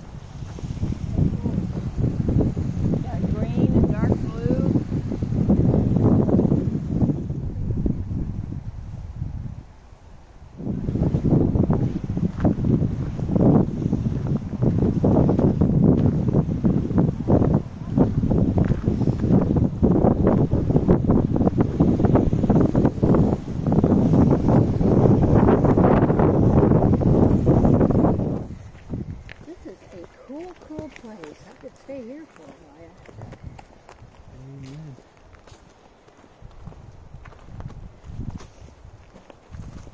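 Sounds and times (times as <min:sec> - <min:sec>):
wind buffeting microphone: 0:00.0 - 0:39.9.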